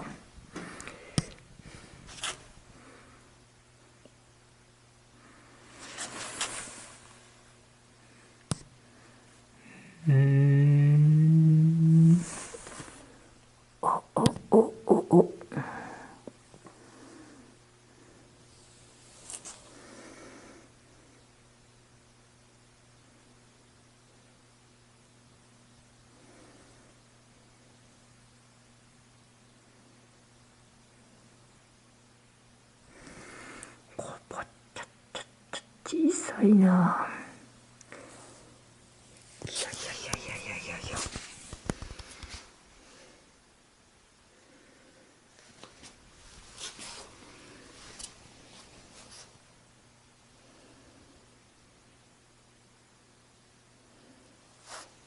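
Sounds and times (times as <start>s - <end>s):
man humming a long vowel: 9.7s - 12.5s, 13.8s - 15.8s
person whispering: 13.8s - 16.2s, 33.9s - 37.4s, 39.4s - 41.4s.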